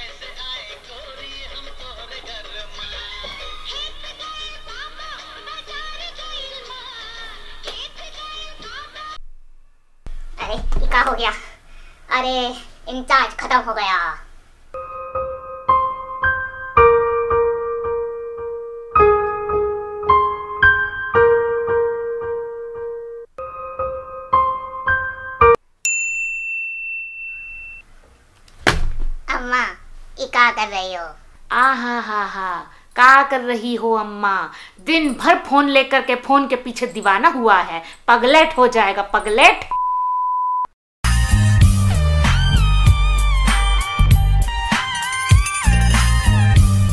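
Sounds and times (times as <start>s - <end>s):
song with processed high vocal: 0.0s - 9.2s.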